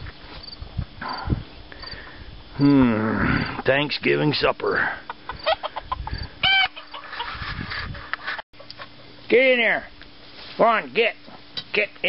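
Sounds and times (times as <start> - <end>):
rooster clucking: 4.6 - 8.0.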